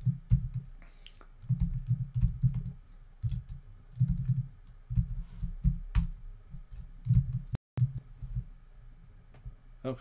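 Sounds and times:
typing on computer keyboard: 1.4 - 6.1.

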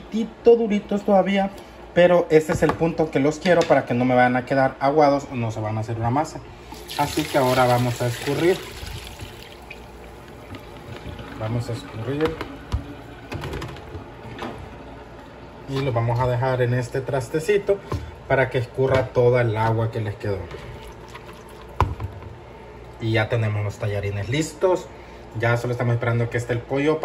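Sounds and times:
water draining and dripping: 6.6 - 15.3
water pouring into a colander: 6.7 - 10.0.

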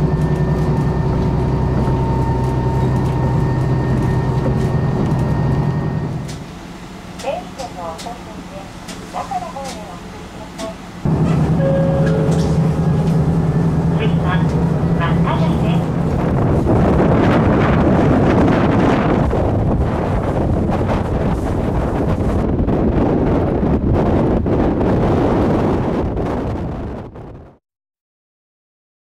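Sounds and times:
diesel railcar engine hum: 0.0 - 27.5
wind rushing on microphone: 11.0 - 27.6.

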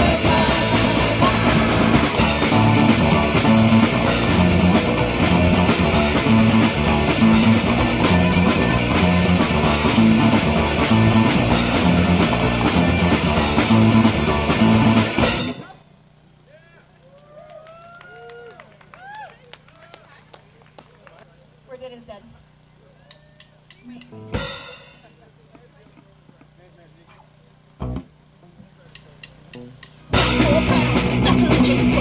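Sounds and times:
punk rock band playing: 0.0 - 15.8, 24.1 - 25.2, 29.6 - 32.0
voices: 0.0 - 24.3, 25.0 - 32.0
low amplifier hum: 0.0 - 32.0
ringing cymbal hit: 24.4 - 25.2.

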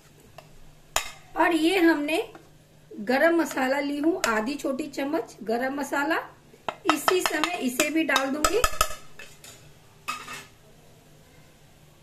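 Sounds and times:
hot oil sizzling: 0.0 - 10.6
metal spoon clattering on pot: 6.8 - 10.5.

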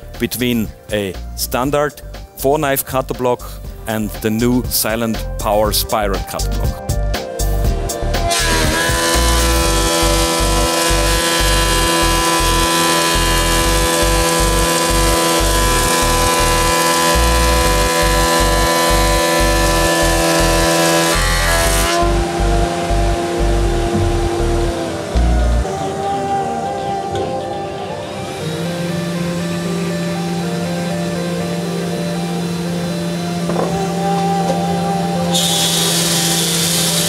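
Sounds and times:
planer machine whine: 7.4 - 37.0
rush of wood cutting: 7.6 - 25.7, 28.3 - 37.0.

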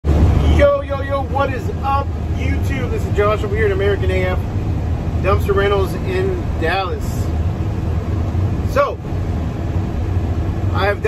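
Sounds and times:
road noise: 0.0 - 11.0
truck engine rumble: 0.0 - 11.0
man talking: 0.4 - 4.4, 5.2 - 7.3, 10.7 - 11.0.

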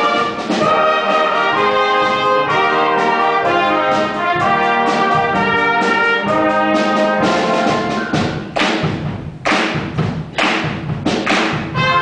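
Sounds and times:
brass sustained notes: 0.0 - 8.2, 11.7 - 12.0
concert band accented hits: 0.0 - 12.0.

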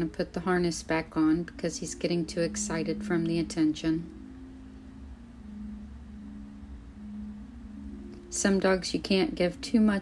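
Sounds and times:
faint low hum: 0.0 - 10.0
soft held tones: 0.0 - 10.0.

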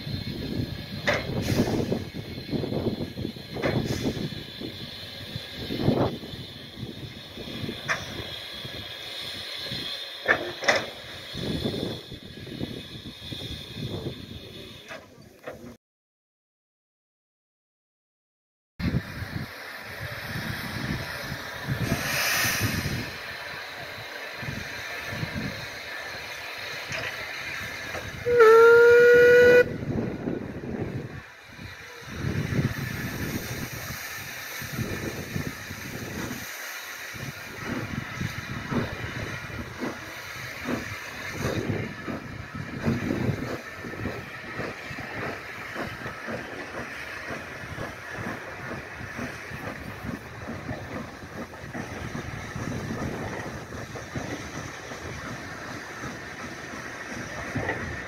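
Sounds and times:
steam locomotive exhaust beats: 0.0 - 15.8, 18.8 - 58.0
steam whistle blast: 28.1 - 29.8.

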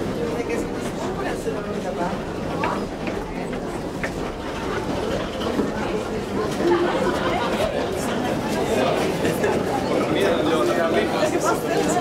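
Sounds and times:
chatter of many people: 0.0 - 12.0.

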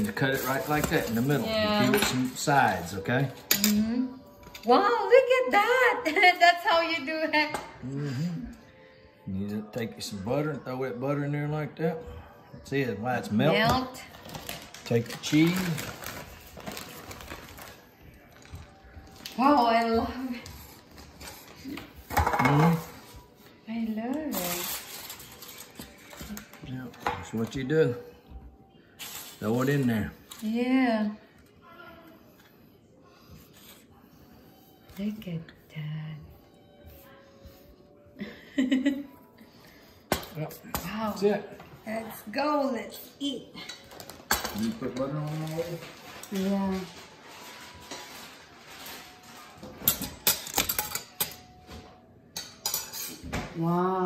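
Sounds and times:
cutlery clinking on ceramic plate: 22.1 - 23.0, 49.6 - 53.5.

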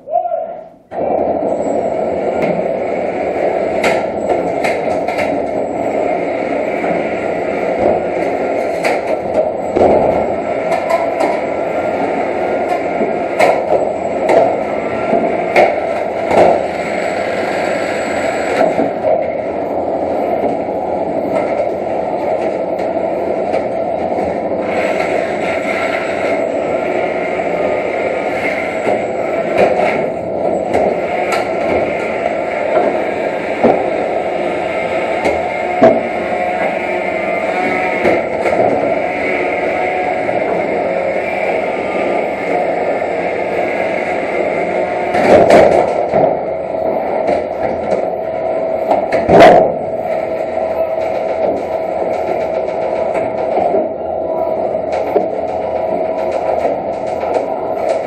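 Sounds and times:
drive motors whining: 0.8 - 58.0.

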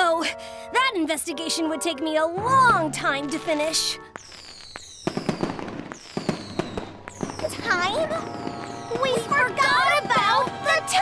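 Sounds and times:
cartoon fireworks pops: 2.5 - 11.0.

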